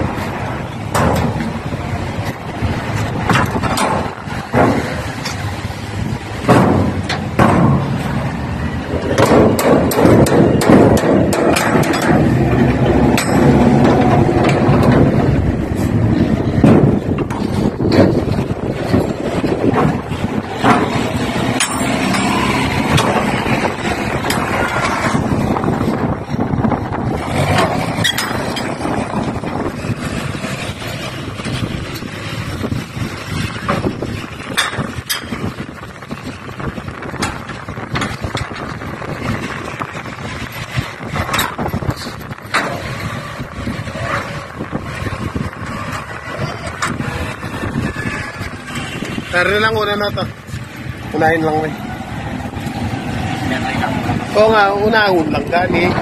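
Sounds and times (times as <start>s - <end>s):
large vehicle engine running: 0.0s - 56.0s
metallic clanks of container door bars: 20.6s - 23.3s, 27.4s - 28.9s.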